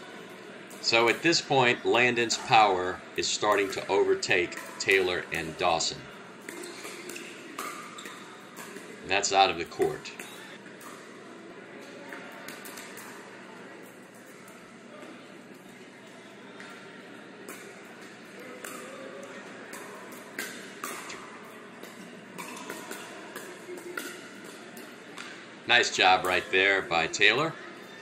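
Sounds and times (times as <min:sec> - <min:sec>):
faint players' voices: 0:00.0 - 0:28.0
paddles hitting plastic ball: 0:06.4 - 0:09.1, 0:17.5 - 0:25.4.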